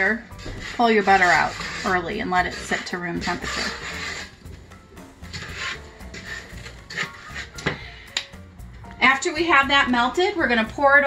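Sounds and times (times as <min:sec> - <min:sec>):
background music: 0:00.0 - 0:11.0
wooden spoon scraping saucepan: 0:00.0 - 0:11.0.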